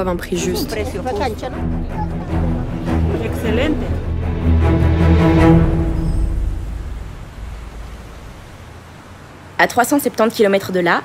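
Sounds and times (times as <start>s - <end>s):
low rumbling noise: 0.0s - 9.6s.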